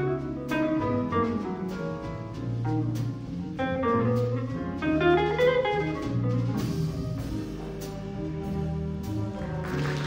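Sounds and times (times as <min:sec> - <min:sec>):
jazz big band playing: 0:00.0 - 0:10.0.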